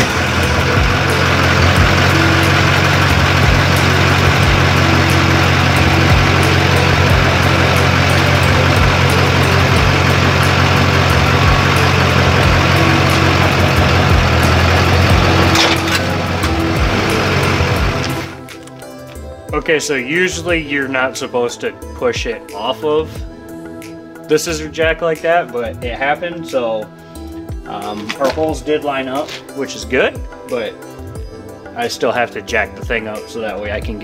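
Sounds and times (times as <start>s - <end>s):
diesel engine running: 0.0s - 18.6s
background music with beat: 0.0s - 34.0s.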